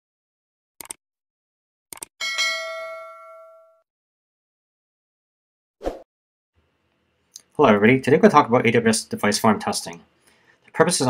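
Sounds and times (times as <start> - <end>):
notification bell ding: 2.2 - 3.8.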